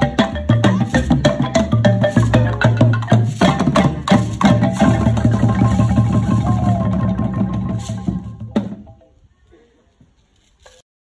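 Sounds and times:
xylophone ensemble playing: 0:00.0 - 0:09.2.

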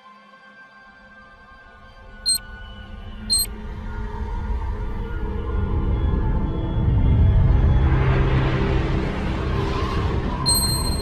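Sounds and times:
high electronic blips: 0:10.5 - 0:11.0.

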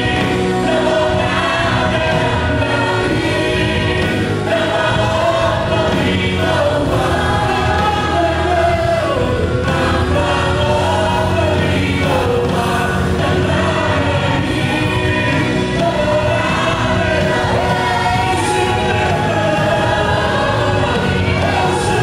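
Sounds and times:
drums: 0:00.0 - 0:22.0
electric bass guitar: 0:00.0 - 0:22.0
voices singing together: 0:00.0 - 0:22.0.

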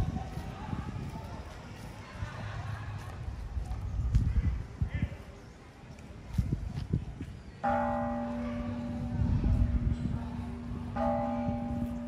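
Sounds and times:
temple bell ringing: 0:07.6 - 0:12.0.

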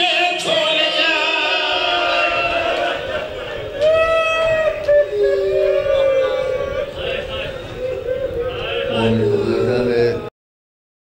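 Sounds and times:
men chanting through a microphone: 0:05.6 - 0:10.3.

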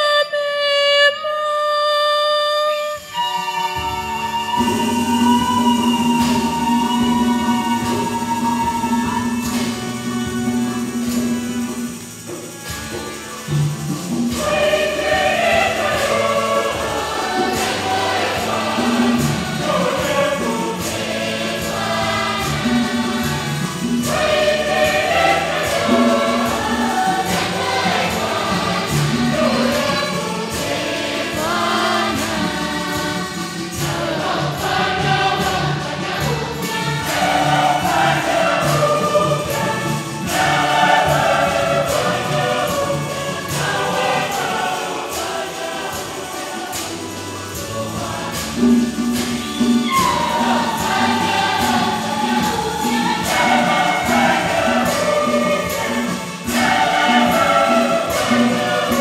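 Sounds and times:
choir singing a hymn: 0:02.6 - 0:59.0
steady percussion beat: 0:03.0 - 0:59.0.

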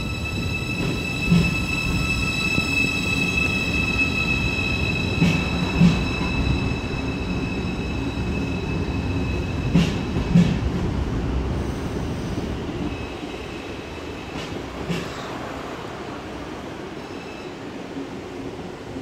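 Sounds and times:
electric train whine: 0:00.0 - 0:19.0.

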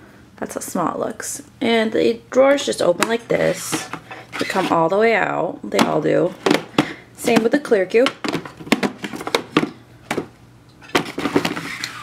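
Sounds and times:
plastic drawer sliding: 0:03.4 - 0:04.8, 0:10.8 - 0:12.0
plastic drawers clacking: 0:05.7 - 0:12.0.

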